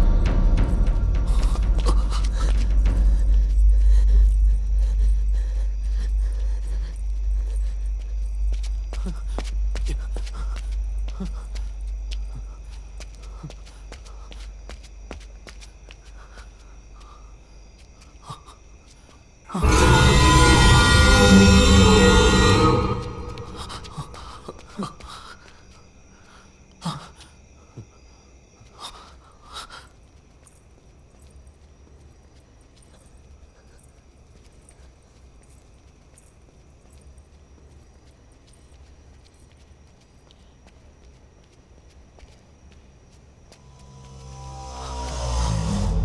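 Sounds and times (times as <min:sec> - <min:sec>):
low rumbling drone: 0:00.0 - 0:09.7, 0:19.6 - 0:25.0, 0:43.6 - 0:46.0
footsteps on pavement: 0:00.2 - 0:05.2, 0:05.8 - 0:19.7, 0:22.8 - 0:26.8, 0:30.0 - 0:45.4.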